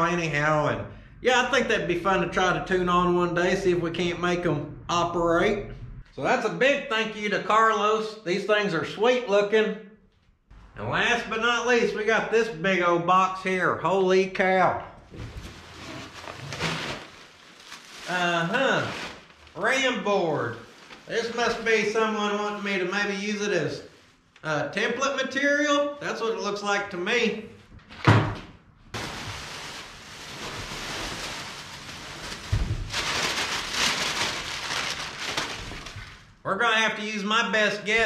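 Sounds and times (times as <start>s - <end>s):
cardboard flaps scraping: 15.1s - 17.8s
plastic packing crinkling: 15.3s - 19.8s, 20.5s - 21.6s, 29.0s - 36.3s.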